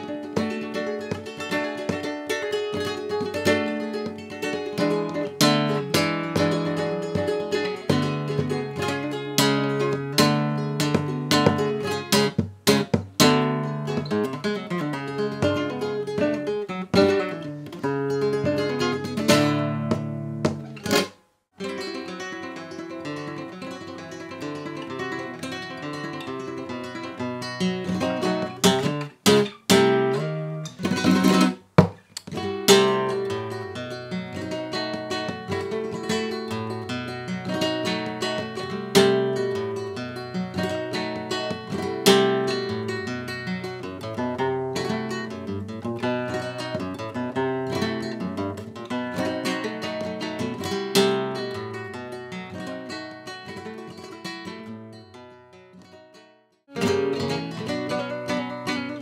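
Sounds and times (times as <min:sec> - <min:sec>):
flamenco guitar: 0:00.0 - 0:59.0.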